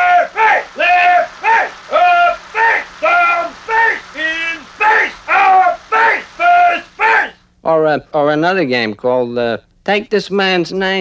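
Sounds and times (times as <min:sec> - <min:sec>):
man shouting commands: 0:00.0 - 0:07.4.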